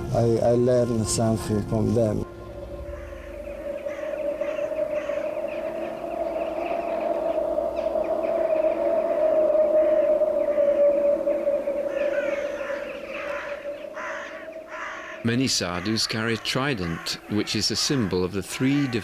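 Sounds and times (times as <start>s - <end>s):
sustained droning tone: 0.0s - 15.2s.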